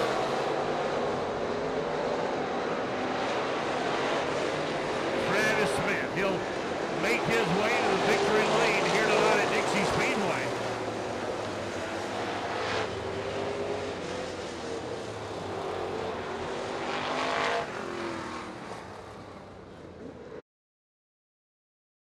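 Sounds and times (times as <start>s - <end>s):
cars passing by: 0.0s - 20.4s
race car engines running: 0.0s - 20.4s.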